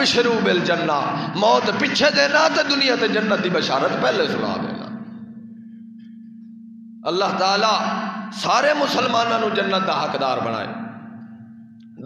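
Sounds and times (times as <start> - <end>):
steady low hum: 0.0 - 12.0.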